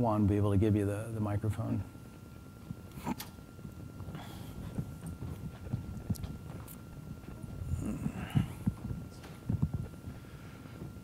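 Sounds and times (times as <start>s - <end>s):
faint high hum: 0.0s - 11.0s
soft footsteps: 3.6s - 11.0s.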